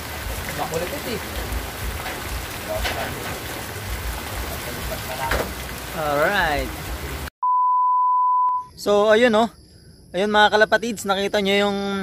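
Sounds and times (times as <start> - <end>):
steady rain falling: 0.0 - 7.3.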